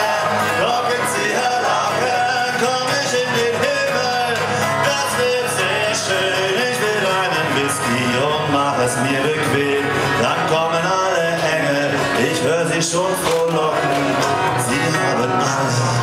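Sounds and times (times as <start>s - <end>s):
man singing: 0.0s - 16.0s
strummed acoustic guitar: 0.0s - 16.0s.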